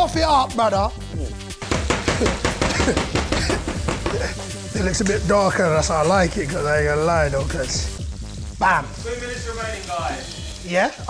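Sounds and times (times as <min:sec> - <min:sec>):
background music: 0:00.0 - 0:11.0
beef frying: 0:00.0 - 0:11.0.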